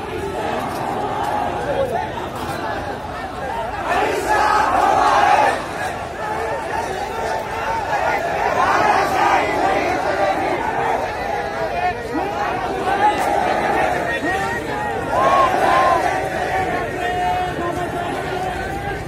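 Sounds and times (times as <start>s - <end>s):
crowd shouting together: 0.0s - 19.0s.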